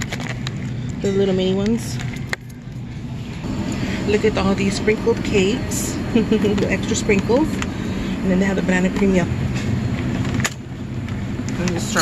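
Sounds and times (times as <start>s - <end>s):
low supermarket hum: 0.0s - 12.0s.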